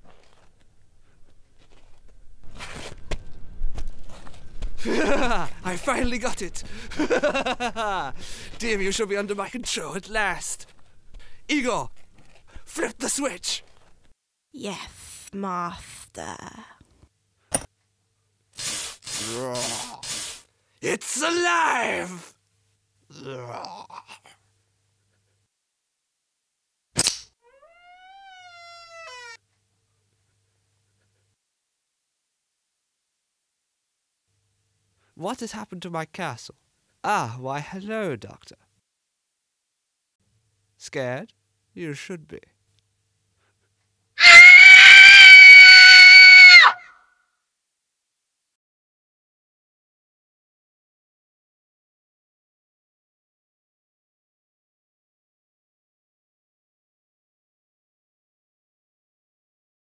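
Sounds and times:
high-pitched scream of terror: 21.2 - 22.2, 27.5 - 29.4, 44.2 - 47.1.

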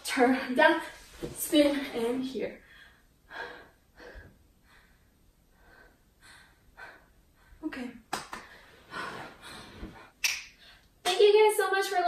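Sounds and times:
woman breathing hard: 2.6 - 7.6, 8.4 - 10.9.

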